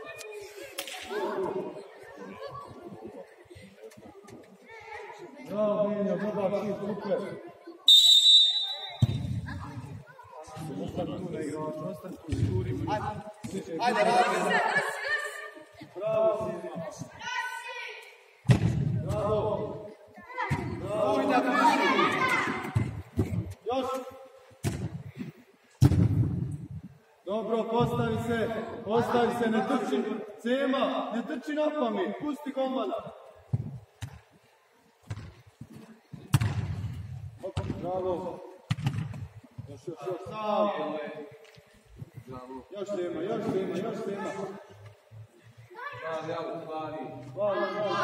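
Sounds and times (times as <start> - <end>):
overlapping chatter of voices: 0.0 - 25.8, 26.5 - 48.0.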